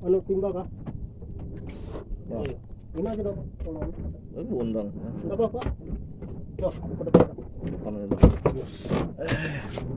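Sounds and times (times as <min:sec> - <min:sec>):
knocks on wooden boat: 0:05.6 - 0:09.4.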